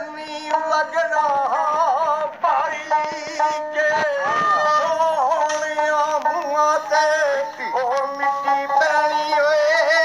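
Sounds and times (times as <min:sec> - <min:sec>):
man singing ornamented line: 0:00.0 - 0:10.0.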